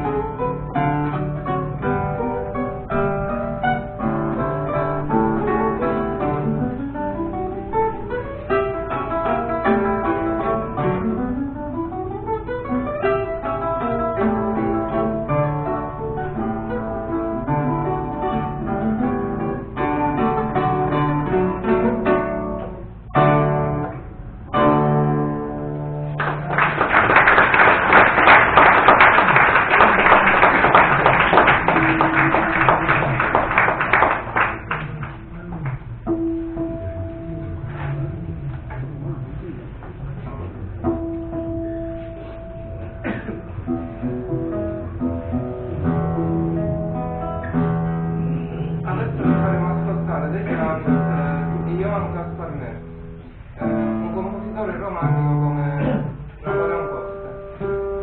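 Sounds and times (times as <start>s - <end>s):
guitar duet: 0.0s - 58.0s
audience applauding: 26.1s - 36.0s.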